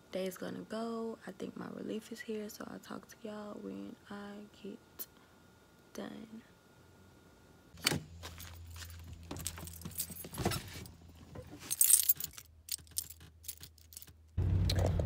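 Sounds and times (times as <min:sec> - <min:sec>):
faint low hum: 0:00.0 - 0:15.0
car engine rumbling: 0:08.1 - 0:15.0
car keys jangling: 0:08.3 - 0:10.8, 0:11.6 - 0:14.3.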